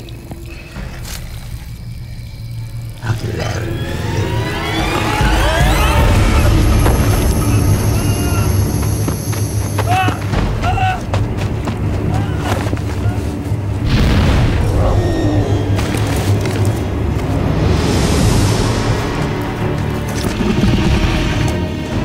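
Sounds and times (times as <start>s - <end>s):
dramatic orchestral film music: 0.0s - 22.0s
deep booming hits: 13.8s - 15.0s.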